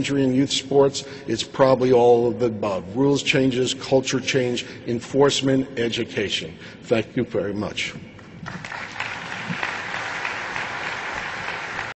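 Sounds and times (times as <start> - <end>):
audience applauding: 8.4 - 12.0.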